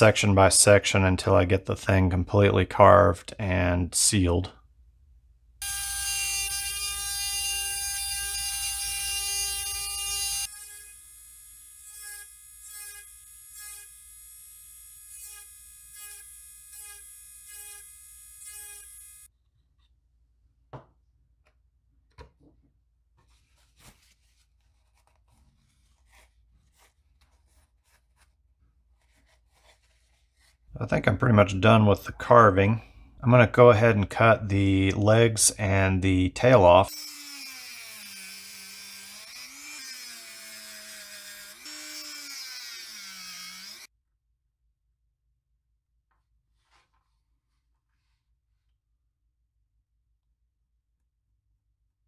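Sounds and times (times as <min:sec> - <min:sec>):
rotary tool grinding wood: 0:05.6 - 0:19.3, 0:36.9 - 0:43.9.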